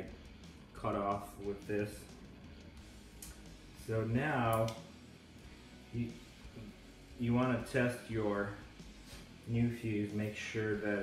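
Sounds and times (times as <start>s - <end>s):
faint clicks of handling wires: 3.1s - 3.5s, 4.4s - 4.9s
man's voice: 9.5s - 11.0s.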